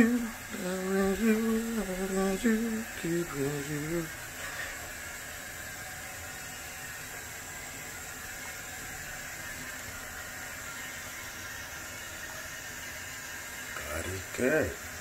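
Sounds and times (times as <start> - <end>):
steady hiss: 0.0 - 15.0.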